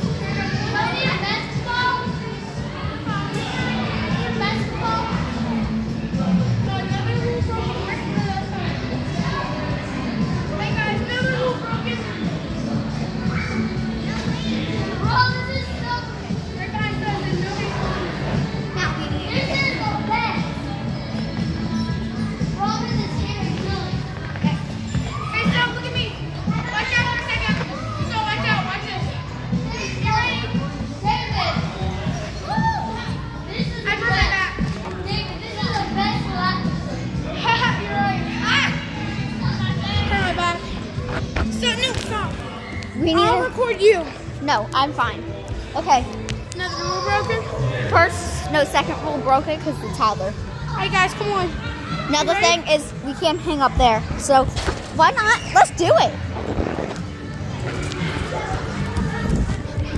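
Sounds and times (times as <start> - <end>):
background music: 0.0 - 59.9
children shouting and playing: 0.0 - 59.9
children shouting and squealing: 32.2 - 33.6.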